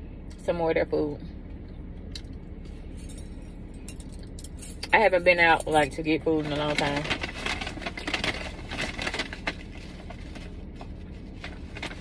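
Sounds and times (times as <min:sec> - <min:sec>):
low steady hum: 0:00.0 - 0:12.0
woman speaking: 0:00.4 - 0:01.3, 0:04.8 - 0:07.2
faint clinks and jingles: 0:02.8 - 0:04.9.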